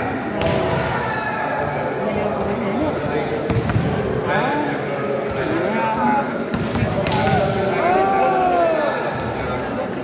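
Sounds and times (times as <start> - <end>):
crowd chatter and shouts: 0.0 - 10.0
hand hitting volleyball: 6.5 - 7.6.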